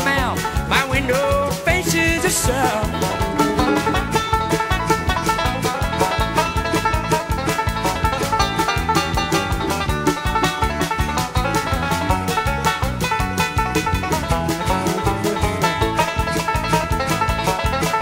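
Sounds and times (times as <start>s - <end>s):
acoustic guitar: 0.0s - 18.0s
banjo picking: 0.0s - 18.0s
bass: 0.0s - 18.0s.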